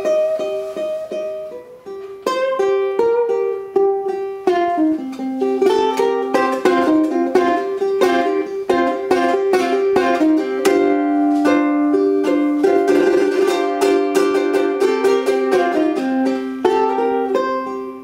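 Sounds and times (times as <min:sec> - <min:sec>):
ukulele played fingerstyle: 0:00.0 - 0:18.0.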